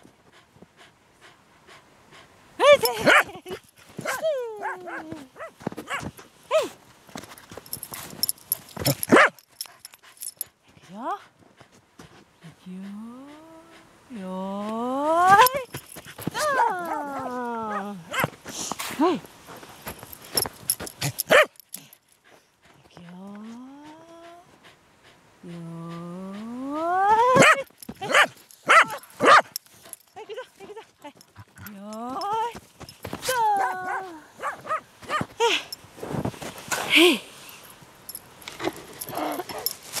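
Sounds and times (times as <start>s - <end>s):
paws crunching in snow: 2.9s - 9.4s, 15.4s - 21.5s, 38.4s - 40.0s
dog yelping: 21.3s - 21.5s, 27.1s - 29.5s.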